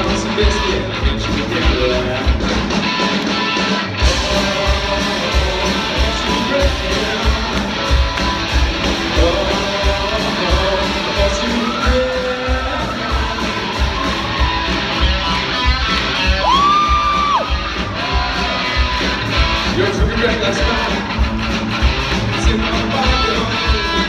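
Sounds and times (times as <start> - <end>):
rock band playing live: 0.0 - 24.0.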